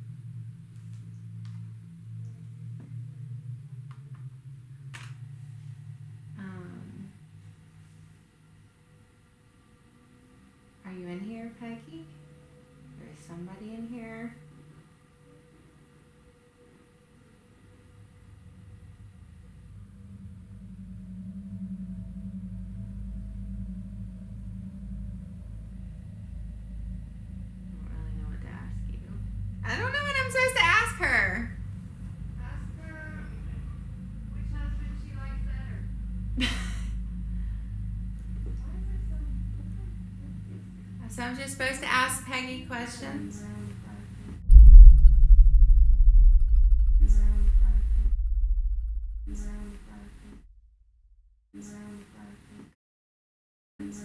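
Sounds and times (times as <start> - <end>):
low droning tone: 0.0 - 9.1, 18.4 - 41.3, 44.4 - 51.4
faint ghostly woman's voice: 6.4 - 7.2, 49.3 - 50.3
loud low rumble: 20.3 - 41.1, 44.4 - 51.4.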